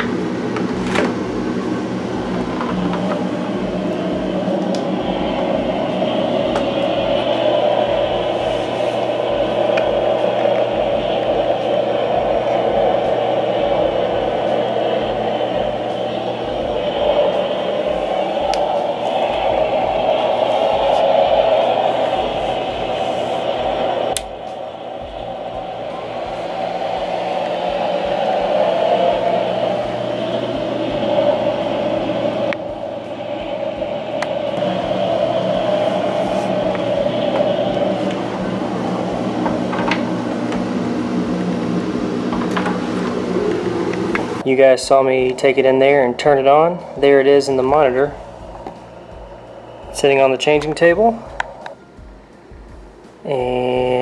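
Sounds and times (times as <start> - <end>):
low hum: 0.0 - 54.0
steady whooshing noise: 0.0 - 54.0.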